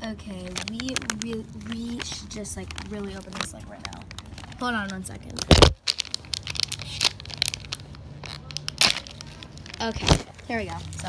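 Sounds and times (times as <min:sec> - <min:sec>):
plastic packaging crackling: 0:00.0 - 0:11.0
plastic packaging ripping: 0:00.3 - 0:11.0.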